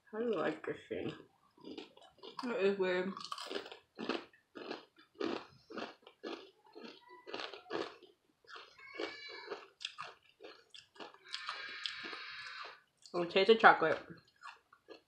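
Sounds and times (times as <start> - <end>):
cookie crunching chewing: 1.0 - 13.2, 13.9 - 15.0.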